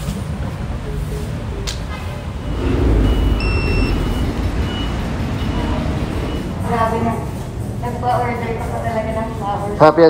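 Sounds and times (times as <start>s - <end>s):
vehicle engine rumble: 2.0s - 8.3s
reversing alarm beeps: 2.3s - 6.7s.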